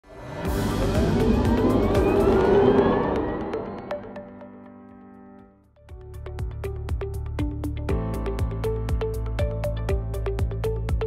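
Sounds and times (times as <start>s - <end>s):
spinning whoosh: 0.4s - 4.3s.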